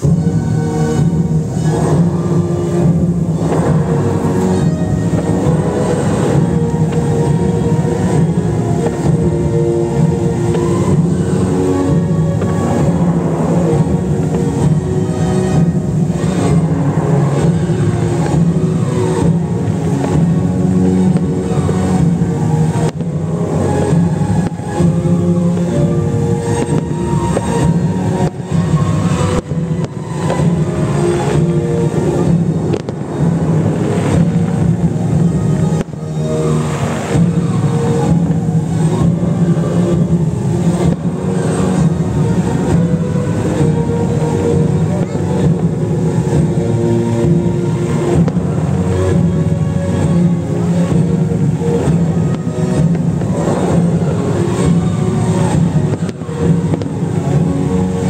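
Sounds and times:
low steady rumble: 0.0s - 58.0s
soundtrack music with held notes: 0.0s - 58.0s.

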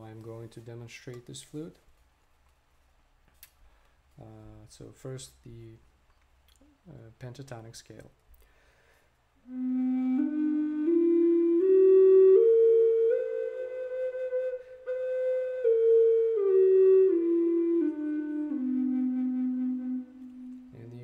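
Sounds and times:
wooden flute playing scale: 9.4s - 21.0s.

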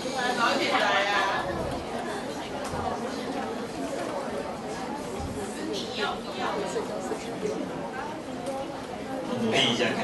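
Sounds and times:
students chattering: 0.0s - 10.0s.

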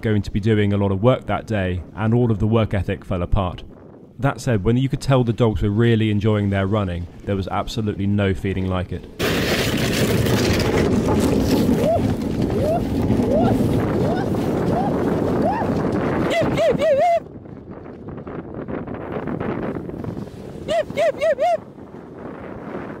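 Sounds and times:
wind on microphone: 0.0s - 23.0s
sled runners scraping on snow: 9.2s - 17.1s, 19.0s - 20.7s.

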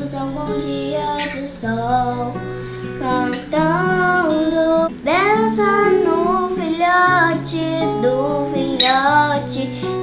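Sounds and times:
acoustic guitar: 0.0s - 10.0s
girl singing: 0.0s - 10.0s.

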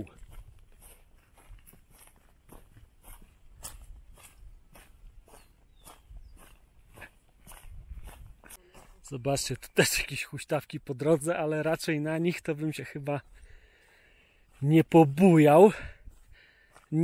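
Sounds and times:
footsteps on gravel: 0.0s - 17.0s.

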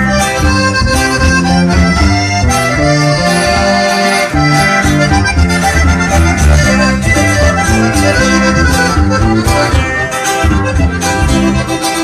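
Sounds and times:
accordion melody: 0.0s - 12.0s
bass line: 0.0s - 12.0s
strummed guitar: 0.0s - 12.0s.

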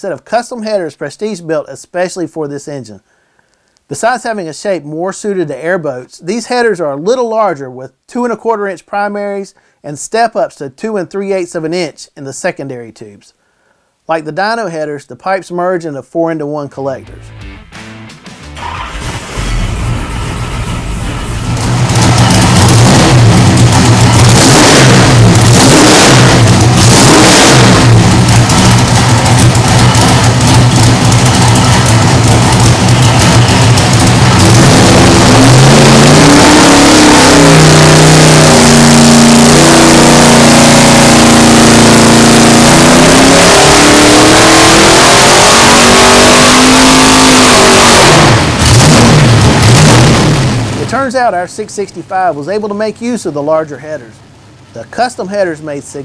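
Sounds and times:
loud engine revving: 18.4s - 51.0s.

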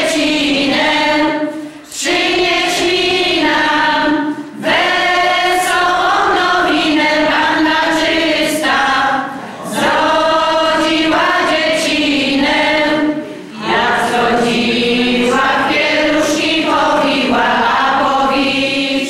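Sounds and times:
women's choir singing a cappella: 0.0s - 19.0s.

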